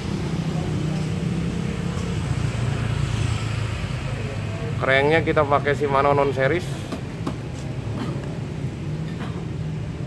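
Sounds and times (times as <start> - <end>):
motor traffic drone: 0.0 - 10.0.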